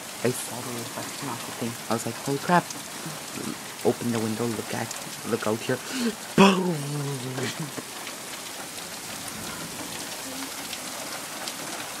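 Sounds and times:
raindrop taps: 0.0s - 12.0s
steady rain falling: 0.0s - 12.0s.

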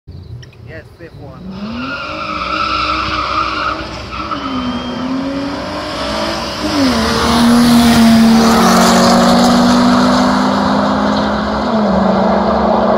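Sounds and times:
cars passing close by: 0.2s - 12.9s
cars accelerating hard: 1.2s - 12.9s.

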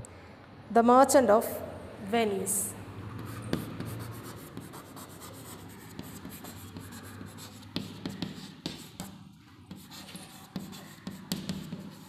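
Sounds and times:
chalk scratching on chalkboard: 3.2s - 12.0s
chalk tapping: 3.2s - 12.0s.

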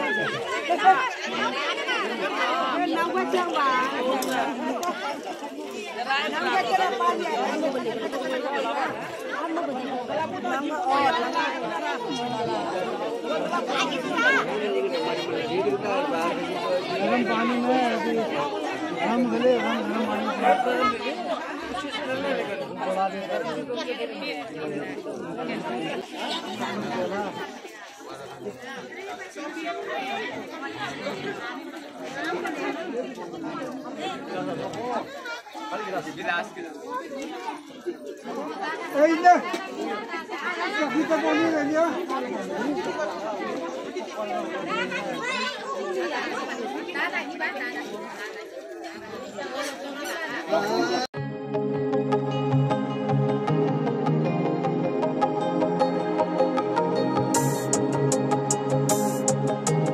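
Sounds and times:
crowd chatter: 0.0s - 59.9s.

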